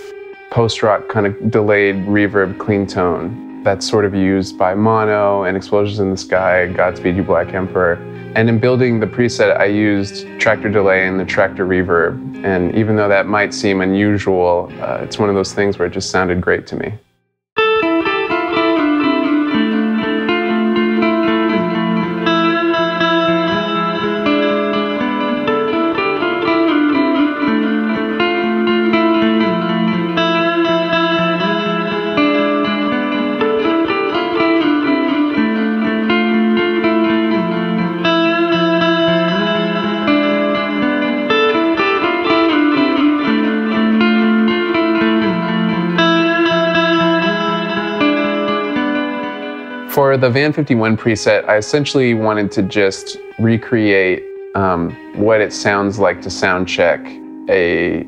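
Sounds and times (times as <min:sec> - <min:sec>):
clean electric guitar chords: 0:00.0 - 0:16.8, 0:17.6 - 0:58.0.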